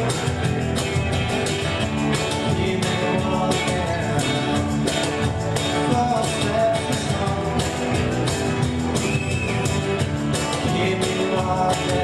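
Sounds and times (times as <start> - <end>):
folk-rock band playing live: 0.0 - 12.0.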